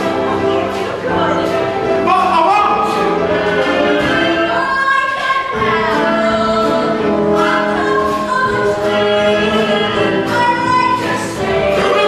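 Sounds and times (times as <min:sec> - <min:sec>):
instrumental accompaniment: 0:00.0 - 0:12.0
woman singing: 0:03.7 - 0:12.0.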